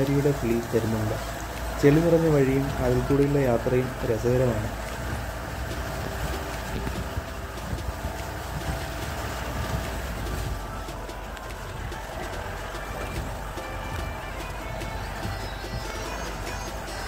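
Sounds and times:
jeep engine rumble: 0.0s - 17.0s.

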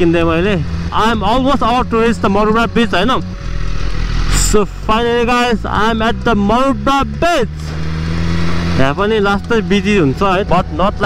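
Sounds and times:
motorcycle engine running: 0.0s - 11.0s
wind and road rush: 0.0s - 11.0s.

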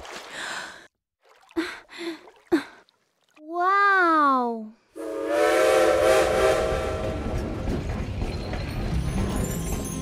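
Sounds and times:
steam locomotive whistle: 5.0s - 7.5s.

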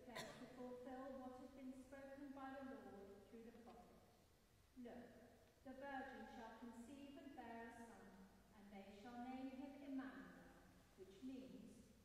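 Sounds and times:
woman reading aloud: 5.7s - 8.0s, 11.0s - 11.8s.

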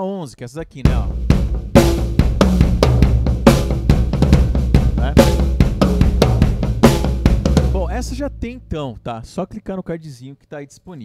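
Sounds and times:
drum kit tribal groove: 0.8s - 9.0s
bass drum boom: 0.9s - 9.0s.

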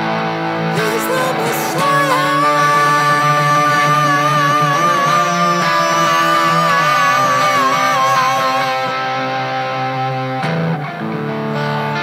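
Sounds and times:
electric guitar chords: 0.0s - 12.0s
man singing long high note: 0.7s - 9.4s.

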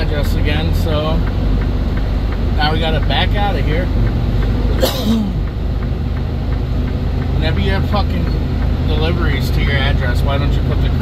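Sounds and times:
diesel truck engine running: 0.0s - 11.0s.

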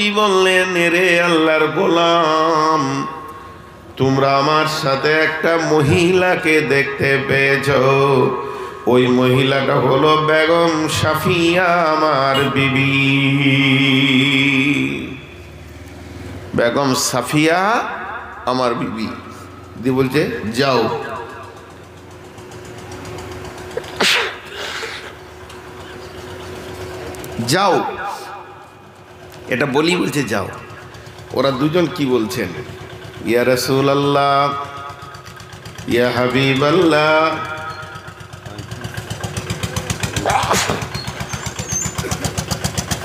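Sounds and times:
small engine running: 0.0s - 43.0s
breathy sound: 8.4s - 8.9s
man sobbing: 23.7s - 25.2s, 40.2s - 40.9s.

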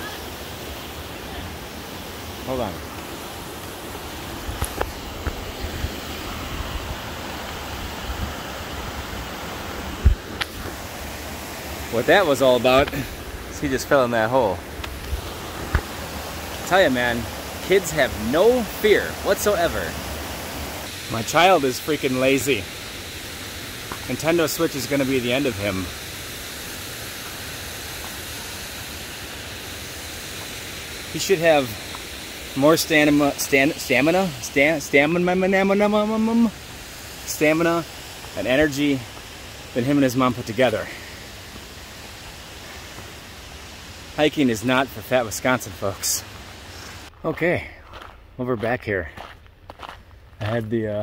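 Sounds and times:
creek rushing over rapids: 0.0s - 47.6s.

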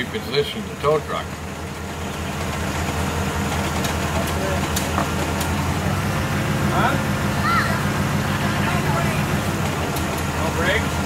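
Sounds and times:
vehicle engine droning: 0.0s - 11.0s.

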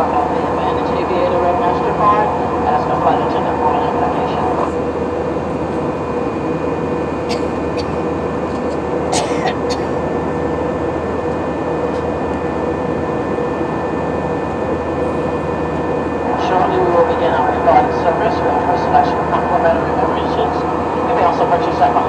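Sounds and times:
public address announcement: 0.0s - 10.5s, 11.2s - 22.0s
airliner cabin engine noise: 0.0s - 22.0s.

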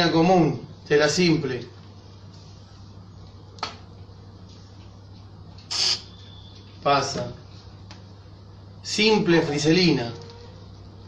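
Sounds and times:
steady low hum: 0.0s - 11.0s
aerosol spray hiss: 5.7s - 6.1s.

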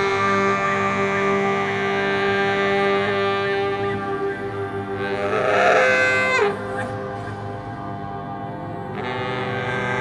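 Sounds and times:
baritone saxophone note bending: 0.0s - 7.6s, 8.8s - 10.0s
ambient music drone: 0.0s - 10.0s.

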